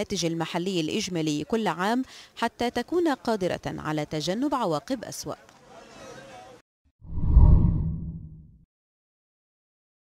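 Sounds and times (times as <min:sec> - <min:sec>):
deep whoosh: 0:07.0 - 0:08.5.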